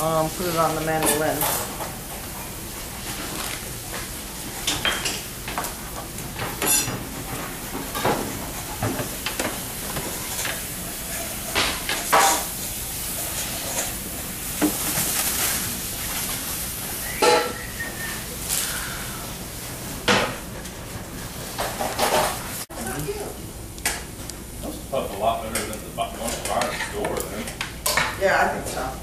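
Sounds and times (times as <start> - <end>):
dishes and utensils clinking: 1.0 - 2.0, 4.6 - 12.5, 17.1 - 17.7, 21.6 - 22.4
steady hiss: 8.4 - 20.0.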